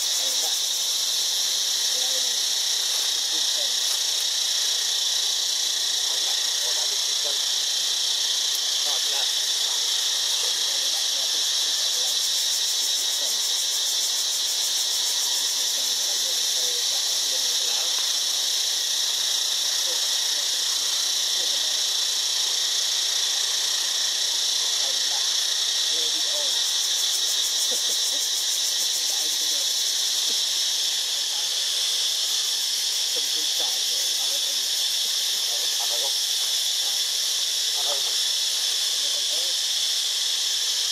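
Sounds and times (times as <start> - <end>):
high-pitched insect chorus: 0.0 - 40.9.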